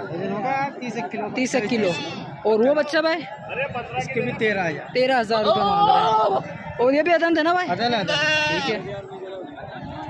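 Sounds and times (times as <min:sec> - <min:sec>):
goat bleating: 0:08.0 - 0:08.8.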